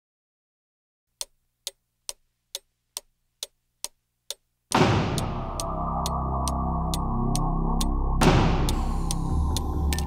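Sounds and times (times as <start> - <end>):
clock ticking: 1.2 - 10.0.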